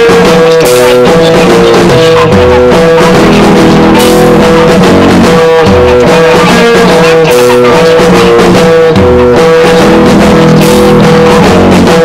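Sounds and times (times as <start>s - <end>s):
lo-fi rock instrumental: 0.0s - 12.0s.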